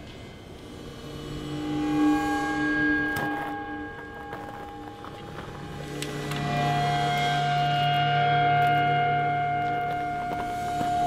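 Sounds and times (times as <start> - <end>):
deep low drone: 0.0 - 11.0
sustained ambient tones: 0.0 - 11.0.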